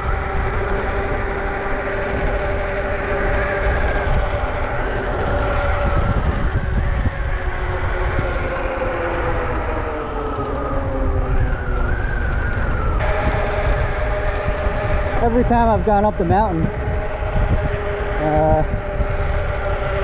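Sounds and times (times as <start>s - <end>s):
electric motor whine: 0.0s - 20.0s
wind rumble on microphone: 0.0s - 20.0s.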